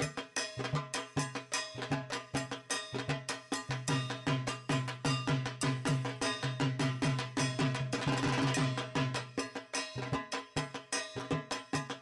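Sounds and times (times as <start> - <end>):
fast even drum beat: 0.0 - 12.0.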